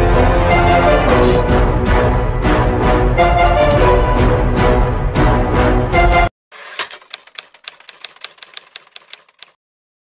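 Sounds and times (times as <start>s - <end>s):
background music: 0.0s - 6.3s
typewriter key clicks: 6.7s - 9.6s.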